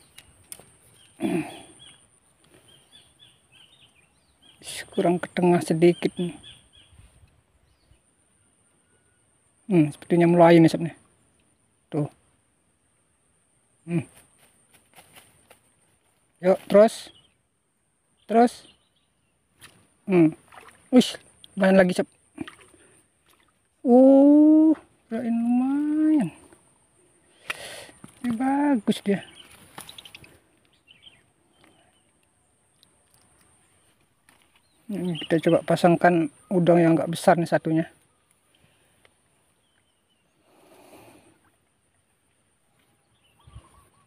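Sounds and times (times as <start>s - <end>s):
small birds chirping: 0.0s - 12.3s, 13.8s - 44.0s.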